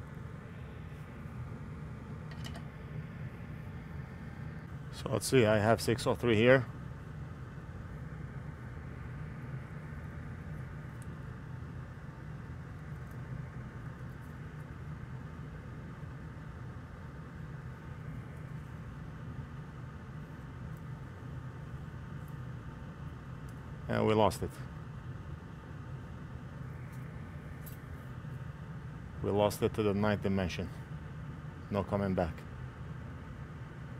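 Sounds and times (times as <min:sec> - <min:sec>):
steady low hum with hiss: 0:00.0 - 0:33.9.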